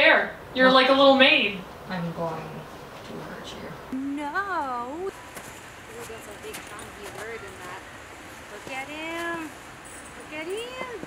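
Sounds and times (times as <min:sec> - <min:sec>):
person cooing calls: 0:03.9 - 0:05.1.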